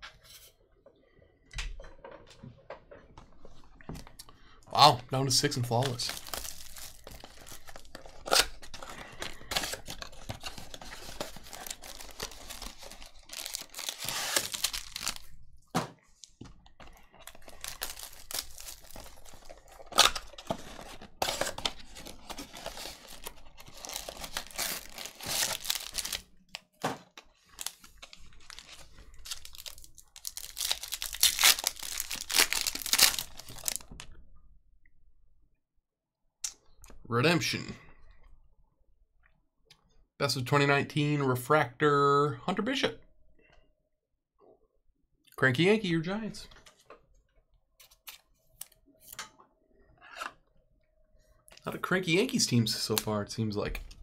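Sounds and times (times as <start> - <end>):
plastic wrap crinkling: 5.2 - 15.4, 16.2 - 26.4, 27.2 - 33.9
cardboard box opening: 9.5 - 15.2, 17.2 - 26.2.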